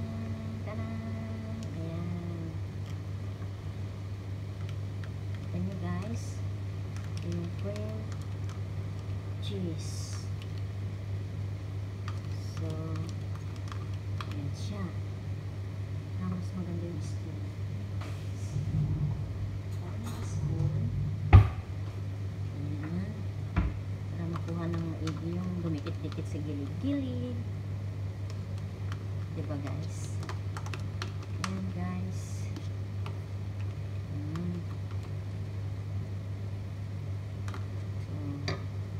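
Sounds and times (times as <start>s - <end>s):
steady low hum: 0.0s - 38.9s
sharp knock: 21.3s - 21.7s.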